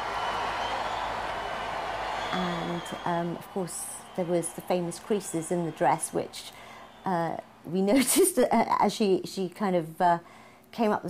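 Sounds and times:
crowd cheering and applauding: 0:00.0 - 0:07.7.

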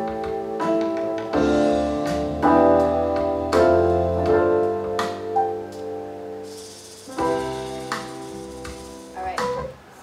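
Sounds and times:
piano chords over pads: 0:00.0 - 0:10.0.

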